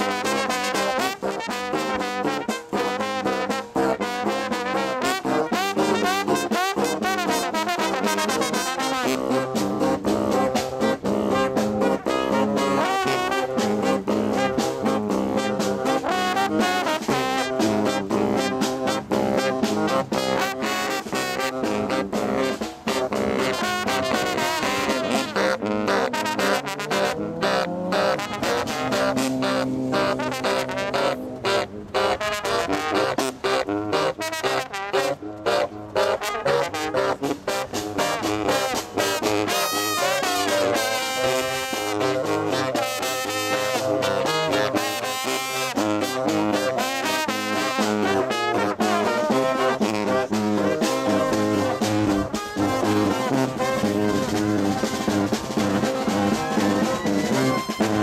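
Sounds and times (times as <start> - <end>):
snare drum beat: 0.0 - 31.2, 32.7 - 58.0
marching brass band playing: 0.0 - 58.0.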